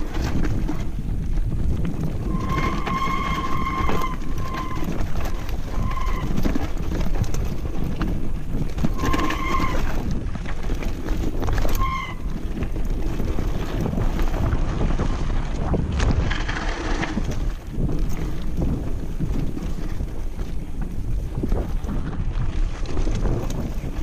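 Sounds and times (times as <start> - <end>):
bike knocking and rattling: 0.0 - 24.0
tyres rumbling on dirt: 0.0 - 24.0
wind buffeting microphone: 0.0 - 24.0.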